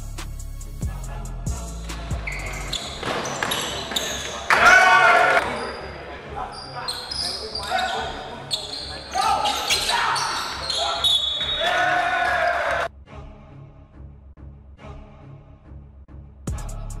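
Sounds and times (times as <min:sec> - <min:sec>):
shoe squeaks: 0:02.1 - 0:11.9
players shouting: 0:03.0 - 0:05.8, 0:07.1 - 0:12.9.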